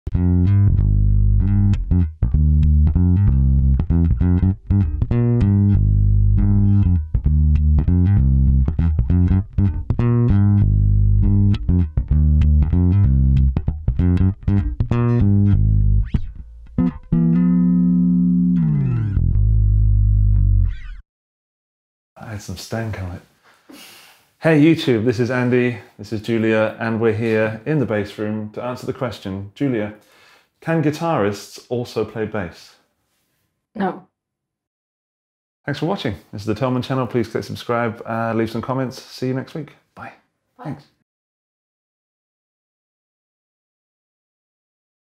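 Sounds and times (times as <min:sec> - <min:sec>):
funky electric bass line: 0:00.1 - 0:21.0.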